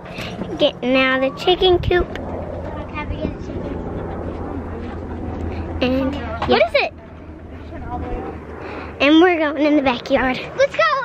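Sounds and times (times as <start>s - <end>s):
wind rumble on microphone: 0.0s - 9.0s.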